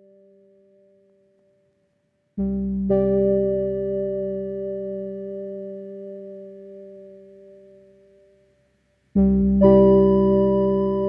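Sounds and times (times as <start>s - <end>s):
soft piano music: 2.5s - 8.5s, 9.4s - 11.0s.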